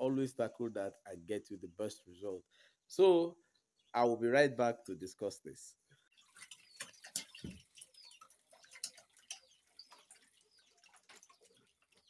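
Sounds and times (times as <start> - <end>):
water splashing and dripping: 6.1 - 12.0.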